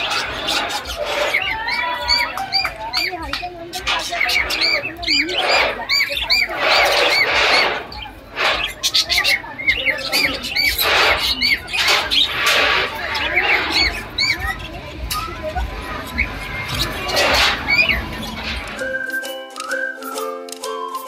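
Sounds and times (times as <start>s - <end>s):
budgerigars chirping: 0.0s - 18.8s
harsh squawks: 0.0s - 19.0s.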